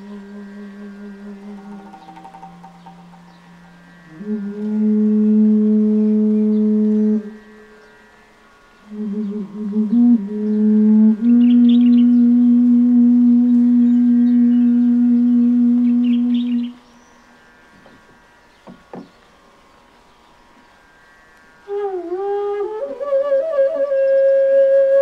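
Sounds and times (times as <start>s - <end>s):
bass bansuri notes: 0.0s - 7.8s, 8.8s - 16.8s, 21.6s - 25.0s.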